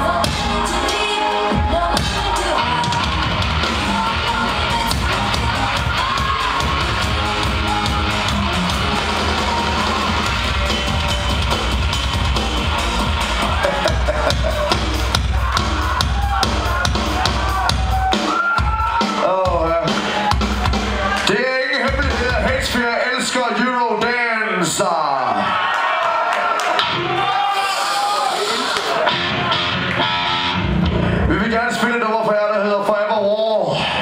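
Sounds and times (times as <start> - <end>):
heavy bass: 0.0 - 23.0, 26.8 - 31.8
pounding drums: 1.6 - 23.0
shouted vocals: 13.2 - 21.9, 24.0 - 29.9.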